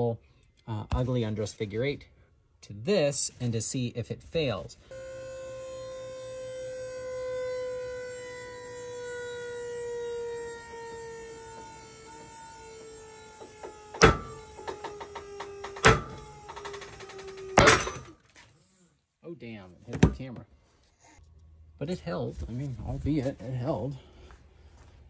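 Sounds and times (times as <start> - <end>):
motor whining: 4.8 - 18.1.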